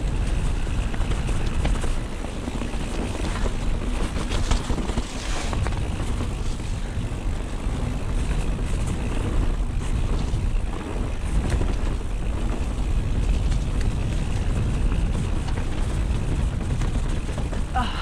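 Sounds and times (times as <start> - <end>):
bike clicks and rattles: 0.0 - 18.0
tyres rolling over mud: 0.0 - 18.0
wind buffeting microphone: 0.0 - 18.0.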